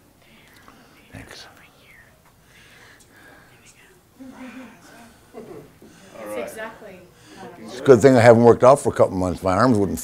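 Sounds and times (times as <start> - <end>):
faint whispered speech: 0.2 - 2.1, 3.4 - 5.0.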